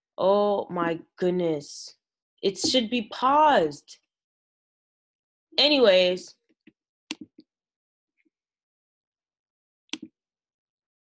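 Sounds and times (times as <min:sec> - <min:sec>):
computer mouse clicks: 0:09.9 - 0:10.1.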